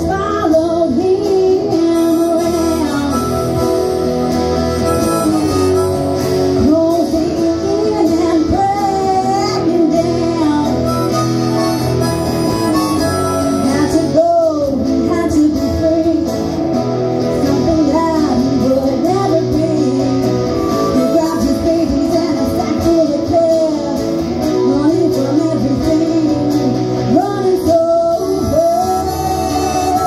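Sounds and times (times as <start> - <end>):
instrumental backing: 0.0 - 30.0
woman singing: 0.0 - 30.0
harmonica: 1.7 - 7.5, 8.8 - 14.2, 19.8 - 21.9, 28.1 - 30.0.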